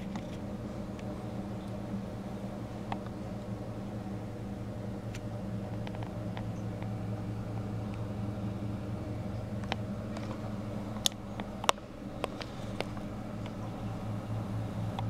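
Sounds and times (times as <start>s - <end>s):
aquarium equipment humming: 0.0s - 15.0s.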